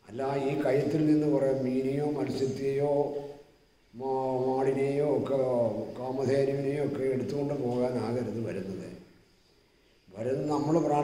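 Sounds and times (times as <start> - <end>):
old man chanting: 0.0 - 9.0, 10.1 - 11.0.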